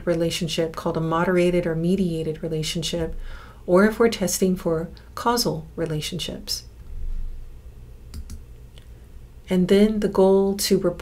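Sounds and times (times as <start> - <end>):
low steady hum: 0.0 - 11.0
computer clicks: 8.1 - 8.4.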